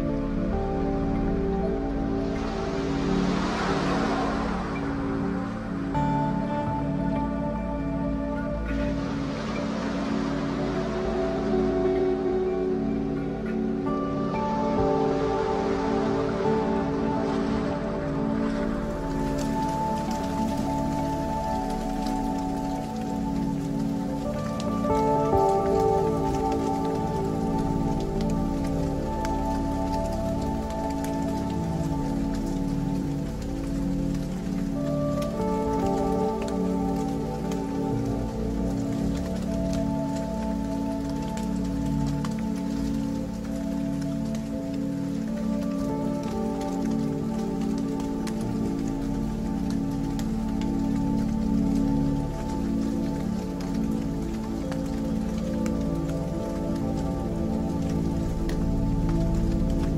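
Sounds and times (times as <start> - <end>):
crackling rain-like texture: 0.0 - 59.9
sustained drone chords: 0.0 - 59.9.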